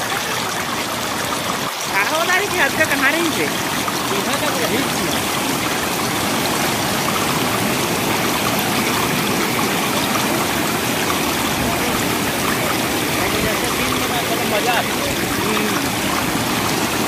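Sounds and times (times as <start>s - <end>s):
floodwater rushing: 0.0s - 17.0s.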